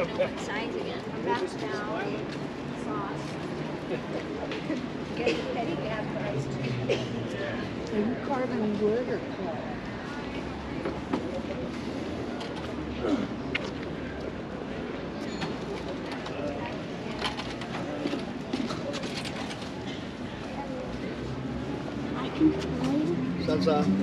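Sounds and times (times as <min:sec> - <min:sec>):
distant people talking: 0:00.0 - 0:24.0.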